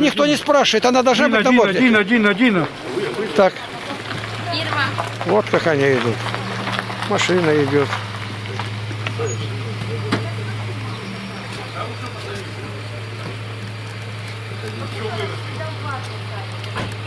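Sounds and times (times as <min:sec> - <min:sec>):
car engine humming: 0:00.0 - 0:17.0
faint voices: 0:00.0 - 0:17.0.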